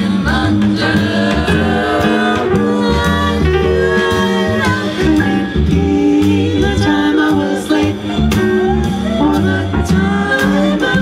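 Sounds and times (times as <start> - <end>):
upright bass line: 0.0 - 11.0
vocal ensemble singing in harmony: 0.0 - 11.0.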